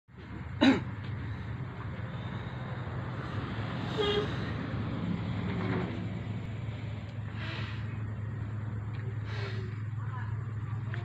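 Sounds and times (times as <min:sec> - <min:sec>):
steady low hum: 0:00.1 - 0:11.0.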